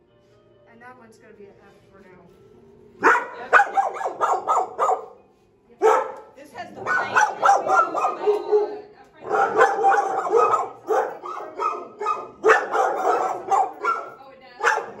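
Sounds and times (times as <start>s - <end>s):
dog barking: 3.0s - 5.2s, 5.8s - 15.0s.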